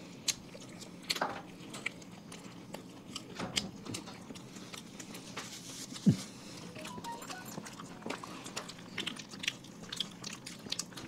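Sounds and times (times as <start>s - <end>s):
soft chewing: 0.0s - 11.0s.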